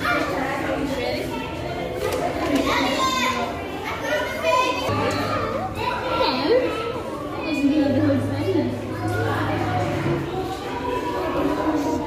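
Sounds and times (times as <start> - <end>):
children calling out: 0.0 - 7.4, 8.9 - 12.0
chatter of voices: 0.0 - 12.0.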